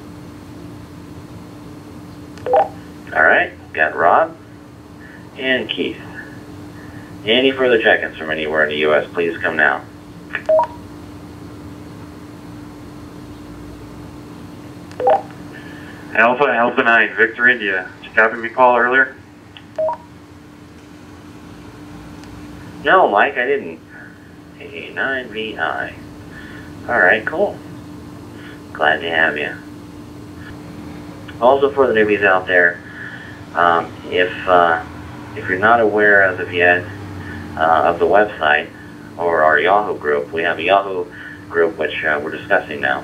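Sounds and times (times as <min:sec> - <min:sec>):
radio speaker hiss and hum: 0:02.4 - 0:10.9, 0:14.9 - 0:19.9, 0:22.1 - 0:30.6, 0:31.2 - 0:43.0
loud beep-like tone: 0:02.5 - 0:02.8
voice over radio: 0:03.1 - 0:04.4, 0:05.3 - 0:06.3, 0:07.2 - 0:10.5, 0:16.1 - 0:19.2, 0:22.8 - 0:26.0, 0:35.4 - 0:37.0.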